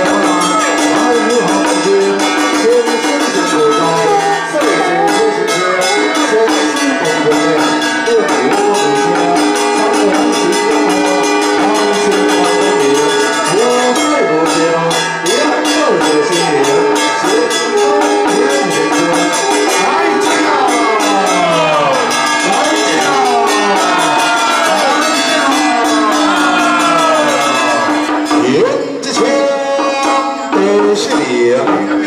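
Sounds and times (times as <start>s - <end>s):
jingling clashing percussion: 0.0s - 32.0s
melody of long bending notes: 0.0s - 32.0s.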